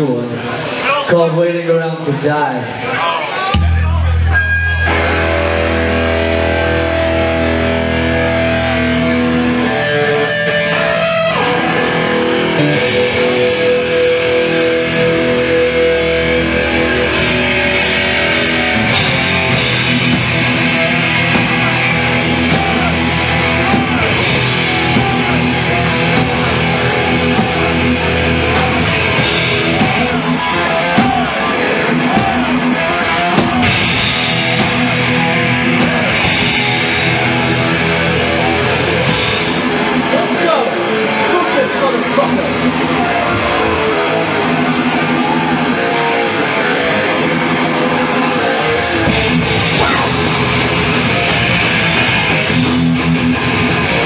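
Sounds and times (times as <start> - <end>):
distorted electric guitars: 2.6 - 54.0
fast cymbal-heavy drumming: 17.2 - 31.3, 33.4 - 39.7, 49.2 - 54.0.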